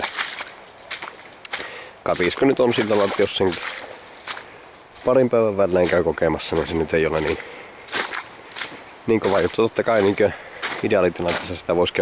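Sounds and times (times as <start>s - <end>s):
footsteps on muddy ground: 0.0s - 12.0s.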